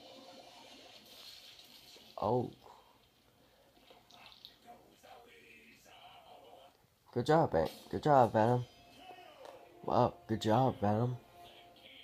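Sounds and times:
muffled television soundtrack: 0:00.0 - 0:12.0.

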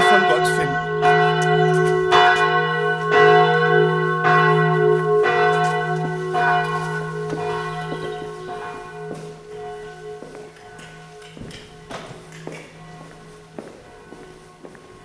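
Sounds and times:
church bell ringing: 0:00.0 - 0:15.0.

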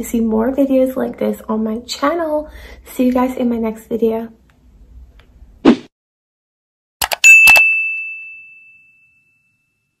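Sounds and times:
quick clicks: 0:07.0 - 0:07.6
high bell ding: 0:07.1 - 0:09.9.

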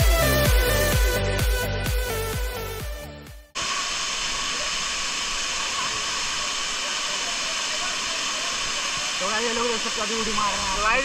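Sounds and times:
electronic background music: 0:00.0 - 0:03.5
waterfall pouring into pool: 0:03.6 - 0:11.0.

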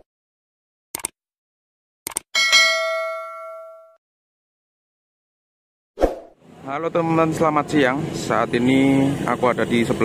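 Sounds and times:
short clicks: 0:01.0 - 0:01.2, 0:02.1 - 0:02.3
notification bell ding: 0:02.4 - 0:04.0.

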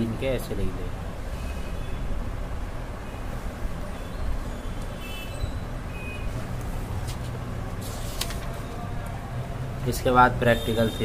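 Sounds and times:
road traffic rumble: 0:00.0 - 0:11.0
paper page turning: 0:07.0 - 0:08.6.

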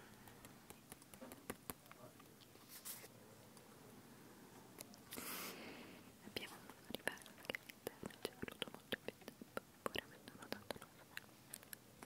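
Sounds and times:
close whispering: 0:06.2 - 0:11.8.

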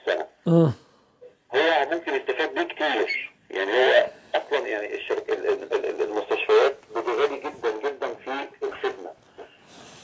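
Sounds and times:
man talking over speakerphone: 0:01.5 - 0:09.5.

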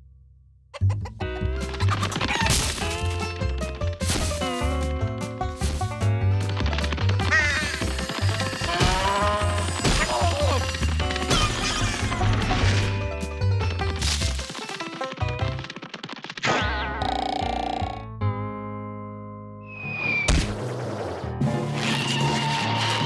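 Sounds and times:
cartoon music with bass line: 0:00.0 - 0:15.7, 0:16.4 - 0:20.5
comic sound effects: 0:08.6 - 0:12.8, 0:16.4 - 0:18.1.

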